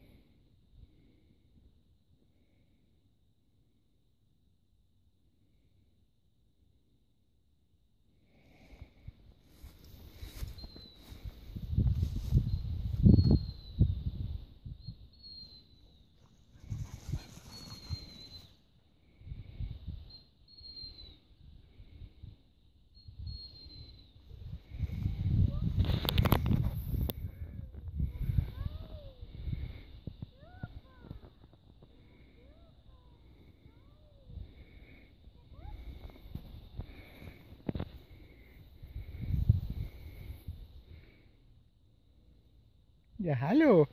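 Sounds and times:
wind gusts on microphone: 10.3s - 15.0s, 16.6s - 18.2s, 23.1s - 31.7s, 35.7s - 40.9s
high bird chirps: 14.7s - 16.2s, 17.3s - 18.6s, 20.0s - 21.3s, 22.9s - 24.3s.

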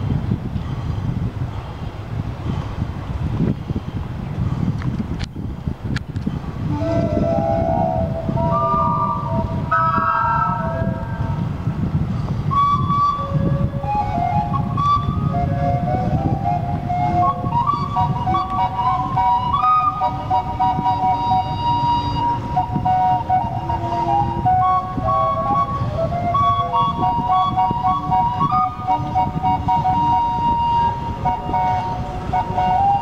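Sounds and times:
low rumble: 6.6s - 12.8s
steam calliope playing a tune: 6.6s - 33.0s.

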